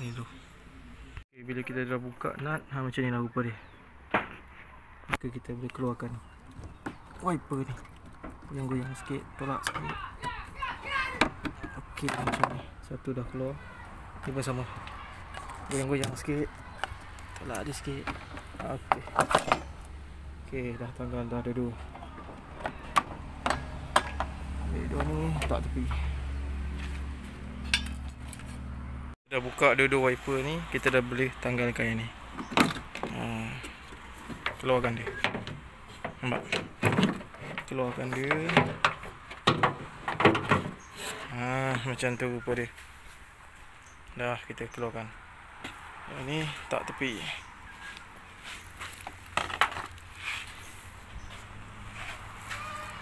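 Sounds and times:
footsteps on gravel: 0:47.7 - 0:53.0.

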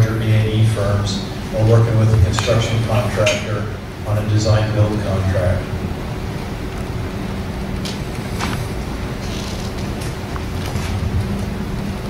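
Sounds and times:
low room hum and rumble: 0:00.0 - 0:12.0.

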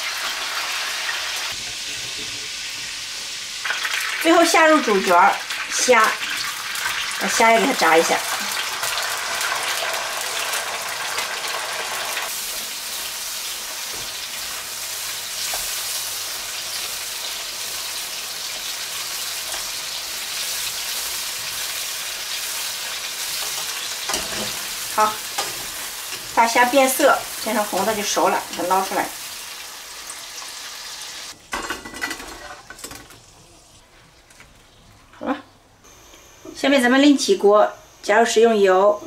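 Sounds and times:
shrimp sizzling in hot oil: 0:00.0 - 0:32.3.

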